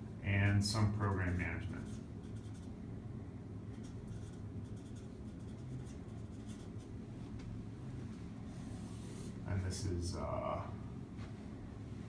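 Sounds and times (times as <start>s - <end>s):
low steady hum: 0.0s - 12.0s
marker writing on paper: 1.8s - 2.7s, 3.8s - 6.9s.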